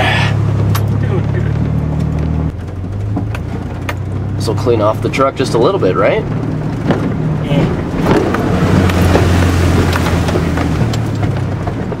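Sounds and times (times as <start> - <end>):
truck engine droning: 0.0 - 12.0
water splashing against truck body: 2.6 - 12.0.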